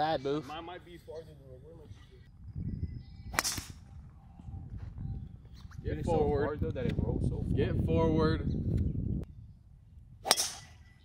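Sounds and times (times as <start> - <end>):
golf club striking ball: 10.2 - 10.8.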